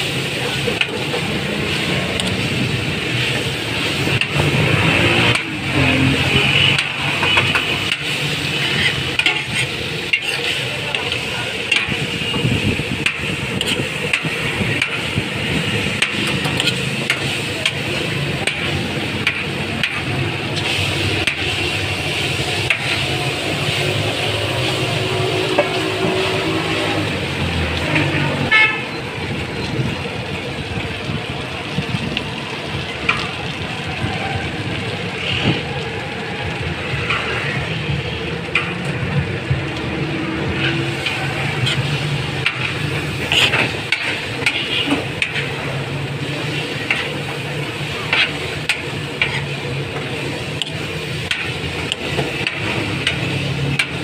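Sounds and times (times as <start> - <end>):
chicken frying: 0.0 - 54.0
road traffic: 0.0 - 54.0
metal scoop scraping a griddle: 8.6 - 11.1, 16.2 - 16.9
car horns: 27.9 - 29.0.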